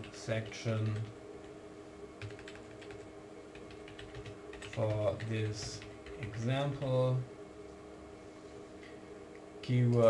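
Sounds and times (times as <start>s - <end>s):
faint steady hum: 0.0s - 10.0s
keyboard typing: 2.2s - 6.8s.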